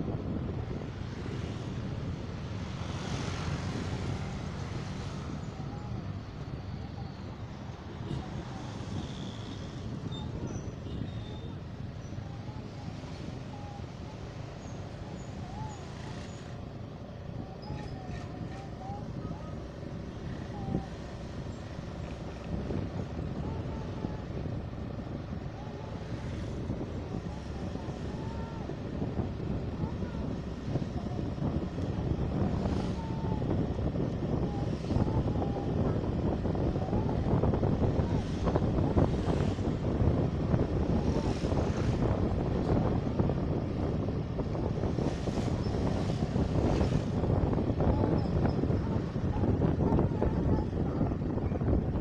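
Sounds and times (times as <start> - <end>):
road and wind noise: 0.0 - 52.0.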